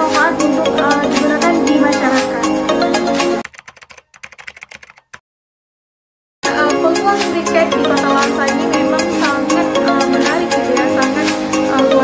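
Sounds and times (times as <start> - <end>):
keyboard key clicks: 3.4 - 5.2.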